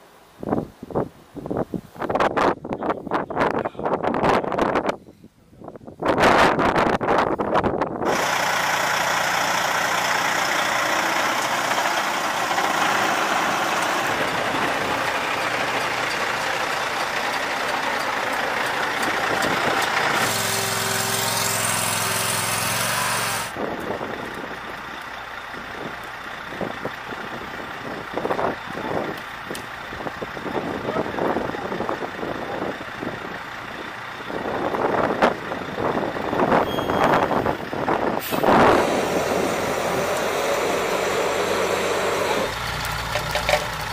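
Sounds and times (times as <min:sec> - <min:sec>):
engine running with whine: 0:08.1 - 0:43.9
knocks and clatter: 0:42.8 - 0:43.9.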